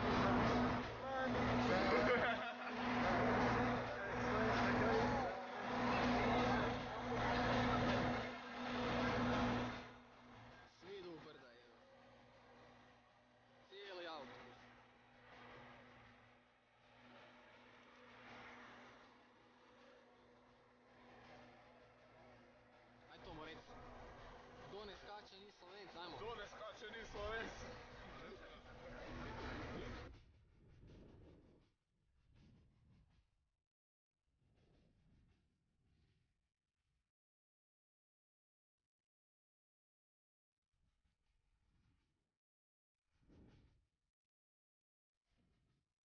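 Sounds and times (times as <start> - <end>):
people talking: 0.0 - 9.8, 10.7 - 11.7, 13.7 - 14.4, 23.1 - 23.8, 24.7 - 30.0
faint indistinct voices: 0.0 - 11.8, 21.0 - 30.1.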